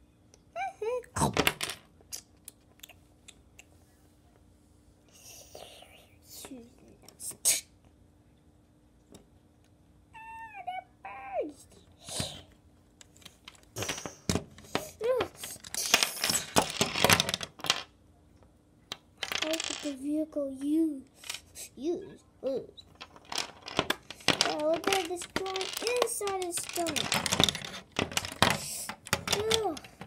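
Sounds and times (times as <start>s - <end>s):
plastic toy pieces clattering: 13.2s - 17.9s, 19.2s - 20.1s, 22.9s - 30.0s.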